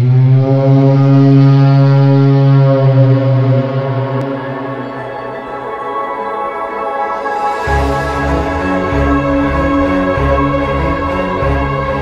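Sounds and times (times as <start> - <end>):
low horn-like drone: 0.0 - 12.0.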